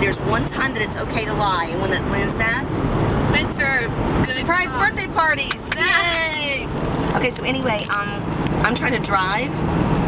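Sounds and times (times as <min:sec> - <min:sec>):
woman talking: 0:00.0 - 0:02.7, 0:03.3 - 0:09.6
car road and engine noise: 0:00.0 - 0:10.0.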